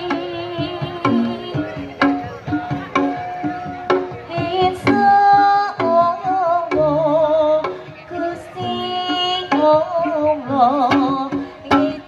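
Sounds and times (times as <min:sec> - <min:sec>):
woman singing ornamented melody: 0:00.0 - 0:01.9, 0:04.3 - 0:12.0.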